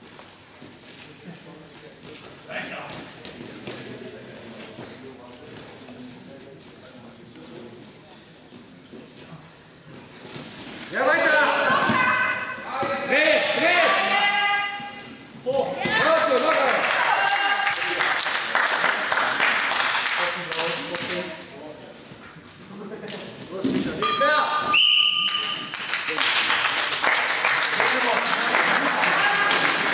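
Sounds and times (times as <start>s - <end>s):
low hall murmur: 0.0s - 29.9s
people shouting encouragement: 15.8s - 17.8s.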